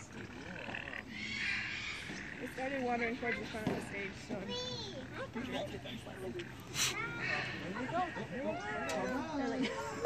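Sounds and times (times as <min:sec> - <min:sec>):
cranes calling: 0:00.0 - 0:09.7.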